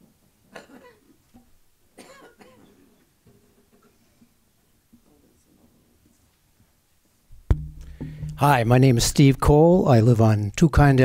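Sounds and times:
person coughing: 2.0s - 2.7s.

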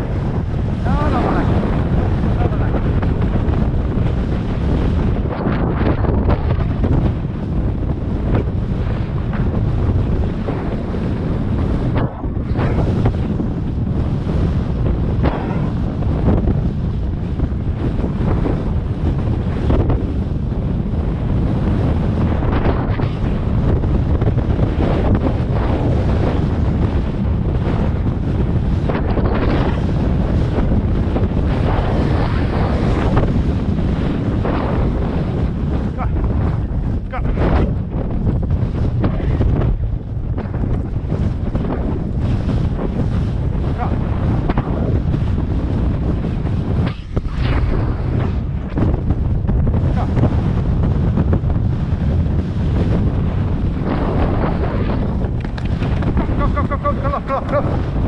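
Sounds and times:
heavy wind on microphone: 0.0s - 58.0s.

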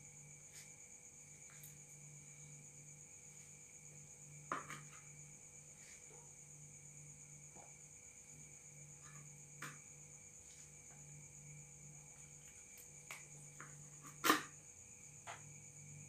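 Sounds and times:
crickets chirping: 0.0s - 16.0s.

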